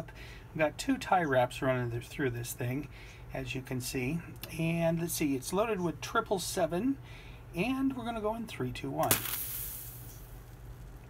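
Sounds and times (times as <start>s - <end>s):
sharp pyrotechnic pop: 9.0s - 10.4s
hiss of escaping gas: 9.1s - 10.3s.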